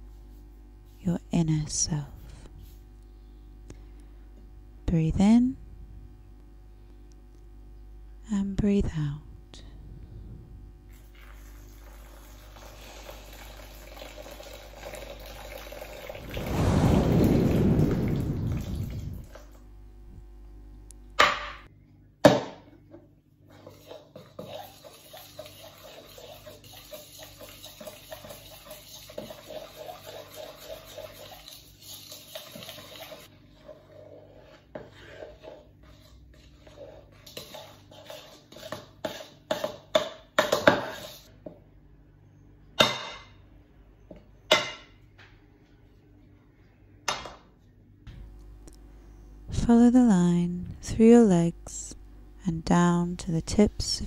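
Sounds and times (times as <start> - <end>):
loud rushing noise: 16.2 - 19.4
knife scraping dough in bowl: 23.5 - 41.3.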